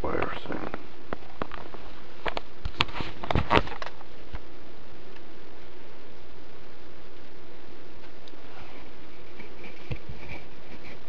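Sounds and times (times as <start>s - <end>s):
steady background hiss: 0.0s - 11.0s.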